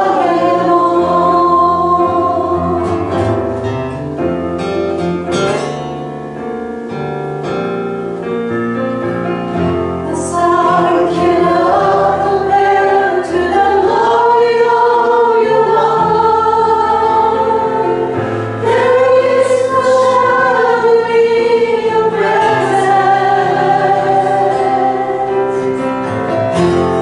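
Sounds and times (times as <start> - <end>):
group singing a slow praise song: 0.0 - 3.6, 10.0 - 27.0
sustained accompaniment: 8.8 - 27.0.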